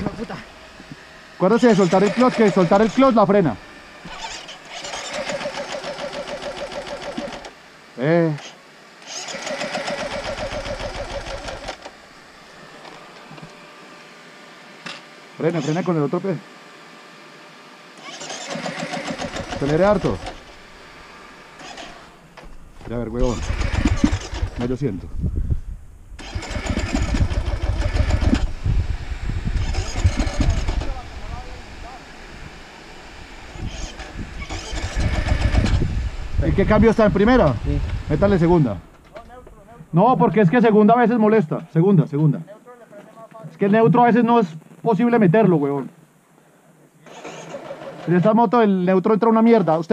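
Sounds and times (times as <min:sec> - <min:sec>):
dirt bike engine running: 0:00.0 - 0:08.4, 0:09.0 - 0:12.0, 0:18.1 - 0:40.9.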